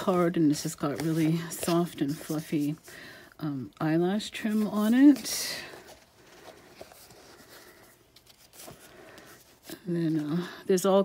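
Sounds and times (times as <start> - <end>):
paper pages rustling: 0.0 - 2.9, 3.8 - 10.5.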